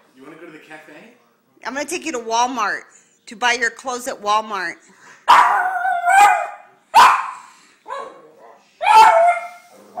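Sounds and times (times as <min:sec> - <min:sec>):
dog barking and yowling: 0:05.3 - 0:09.8.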